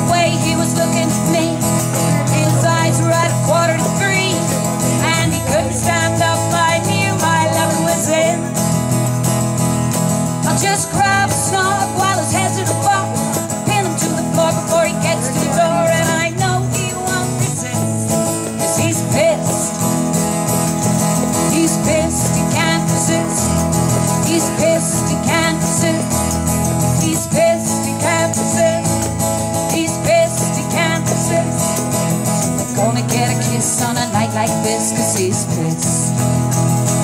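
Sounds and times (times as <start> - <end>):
woman singing: 0.0 - 8.6, 10.4 - 20.0, 21.4 - 36.3
acoustic guitar strumming: 0.0 - 37.0.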